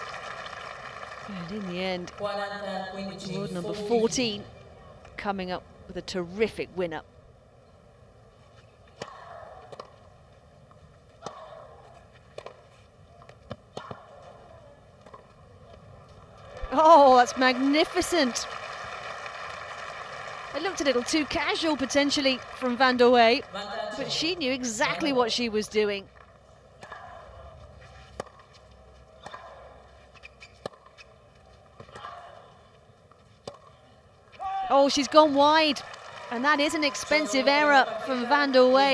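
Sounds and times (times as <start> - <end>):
tennis ball bouncing on clay: 28.2 - 31.1, 33.4 - 33.8.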